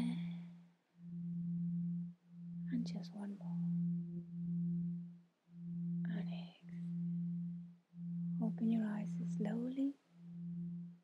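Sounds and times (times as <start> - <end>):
low pure tone drone: 0.0 - 11.0.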